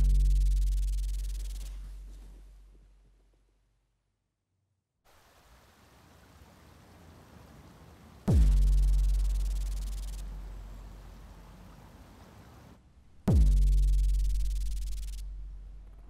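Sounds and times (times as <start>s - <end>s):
deep boom and low rumble: 0.0s - 2.6s, 8.3s - 10.9s, 13.2s - 15.9s
faint hiss: 0.0s - 3.4s, 5.1s - 15.6s.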